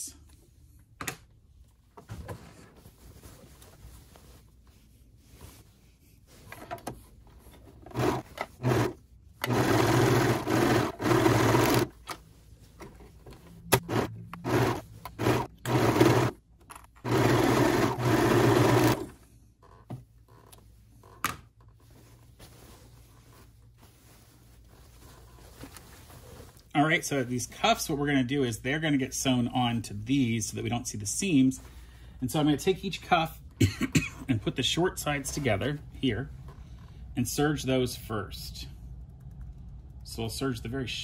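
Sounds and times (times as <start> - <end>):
serger stitching: 7.8 - 12.0, 13.7 - 16.4, 17.0 - 19.2.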